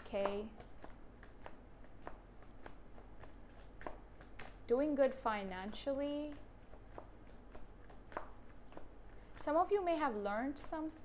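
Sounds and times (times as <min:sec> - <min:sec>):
cards being shuffled: 0:00.0 - 0:10.7.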